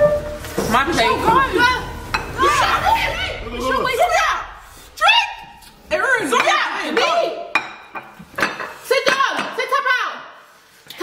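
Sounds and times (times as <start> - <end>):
plates scraping on countertop: 6.3 - 9.6.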